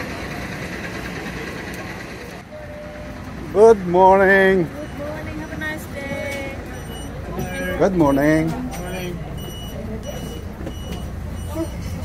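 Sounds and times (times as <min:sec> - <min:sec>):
bus engine low rumble: 0:00.0 - 0:12.0
faint passenger chatter: 0:00.0 - 0:12.0.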